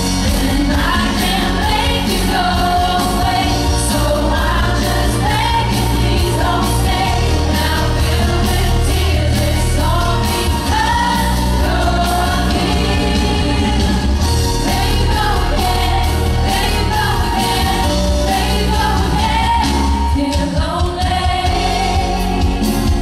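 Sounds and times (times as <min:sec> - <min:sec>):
band with strong bass: 0:00.0 - 0:23.0
woman singing into microphone: 0:00.3 - 0:22.6.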